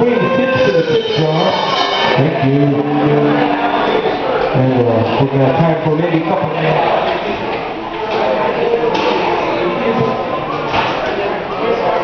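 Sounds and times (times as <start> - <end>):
electric guitars: 0.0 - 4.6
drums: 0.5 - 2.4.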